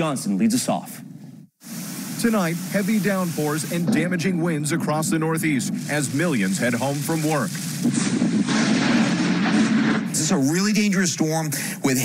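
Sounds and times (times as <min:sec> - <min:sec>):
loud thunder rumble: 0:03.7 - 0:10.6.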